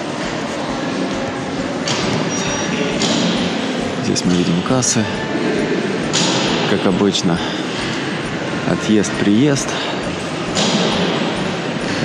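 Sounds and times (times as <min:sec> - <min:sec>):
echoing hiss and hum: 0:00.0 - 0:12.0.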